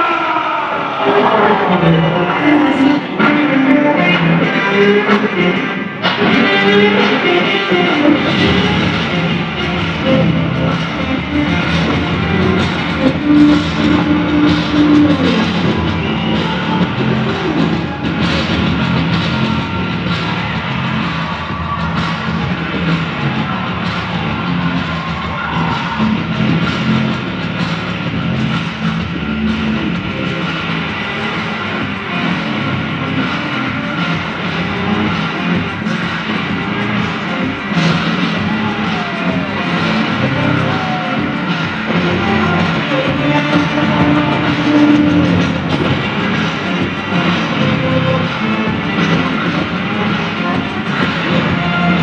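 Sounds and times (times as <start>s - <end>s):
rock music through speakers: 0.0s - 52.0s.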